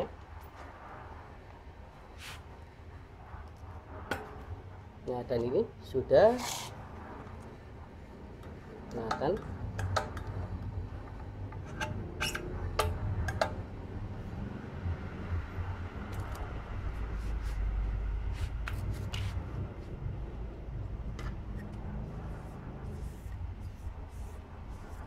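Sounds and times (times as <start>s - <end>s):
steady low hum: 0.0s - 25.0s
cloth rubbing: 2.2s - 2.4s, 18.3s - 19.5s.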